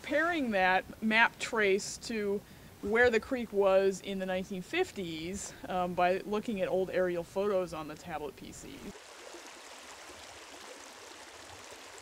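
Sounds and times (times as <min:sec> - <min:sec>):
creek water flowing: 0:08.7 - 0:12.0.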